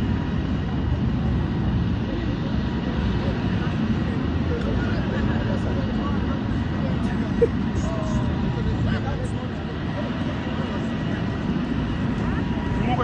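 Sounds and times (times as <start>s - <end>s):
low rumbling outdoor noise: 0.0s - 13.0s
voices of people walking: 0.0s - 13.0s.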